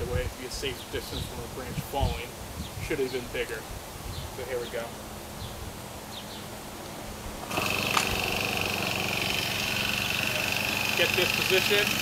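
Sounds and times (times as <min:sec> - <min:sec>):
high whine: 0:07.4 - 0:12.0
small four-stroke engine running: 0:07.4 - 0:12.0.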